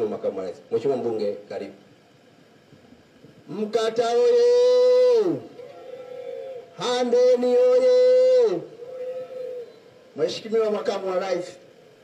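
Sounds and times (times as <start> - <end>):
man shouting a call: 3.6 - 10.8.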